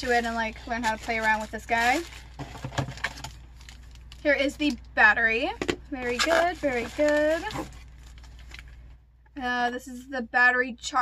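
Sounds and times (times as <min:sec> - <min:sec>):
plastic packaging rustling: 0:00.0 - 0:04.8, 0:06.0 - 0:09.0.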